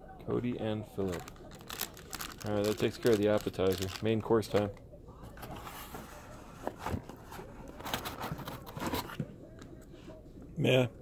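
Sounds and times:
cardboard rustling and scraping: 5.4 - 9.2.

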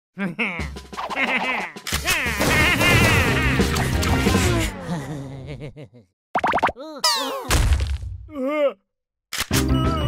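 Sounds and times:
cartoon bubble bloops: 6.4 - 7.3.

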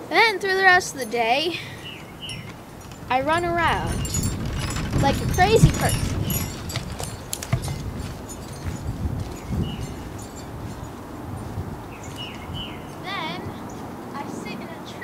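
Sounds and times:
wind rumble: 0.7 - 14.5
bird chirps: 1.7 - 2.6, 7.2 - 11.0, 11.8 - 13.9
microphone handling: 2.4 - 12.8
sharp knocks: 4.0 - 8.8.

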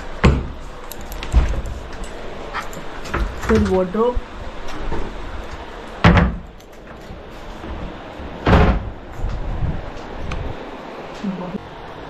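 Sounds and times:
loud thud: 6.0 - 6.4, 8.4 - 8.9.

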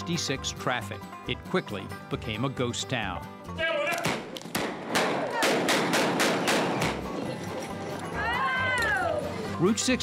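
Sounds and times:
background noise: 0.0 - 10.0
sharp knocks: 4.0 - 7.1.

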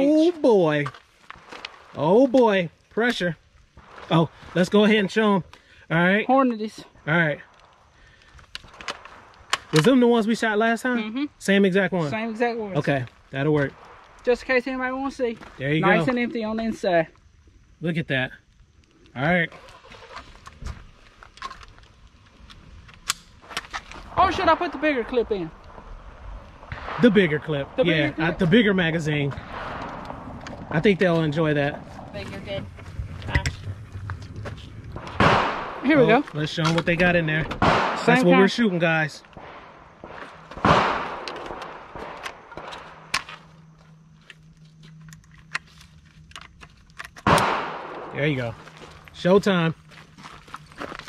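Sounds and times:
rifle handling clicks and knocks: 8.3 - 9.9, 44.2 - 48.0
gunshots with echo: 26.7 - 27.6, 35.0 - 36.0, 37.6 - 38.2, 39.4 - 42.2, 47.2 - 48.5
sharp rifle click: 47.0 - 48.1.

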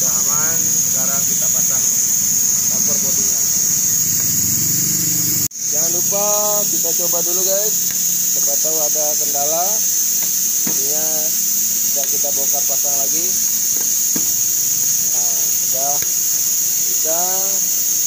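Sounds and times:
voices talking: 0.0 - 17.9
high-pitched hiss: 0.0 - 18.0.

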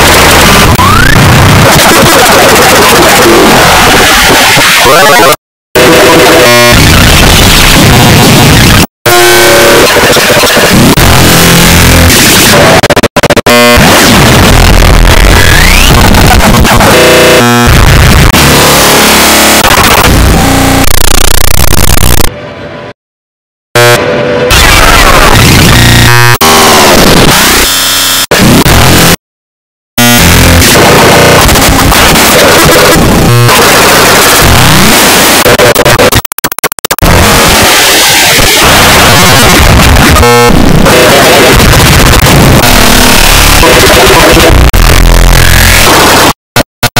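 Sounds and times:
distorted electronic noise: 0.0 - 22.4, 23.8 - 29.2, 30.0 - 46.9.

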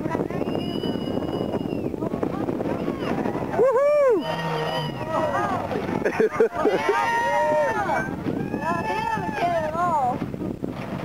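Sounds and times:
spectator whooping: 3.2 - 9.5.

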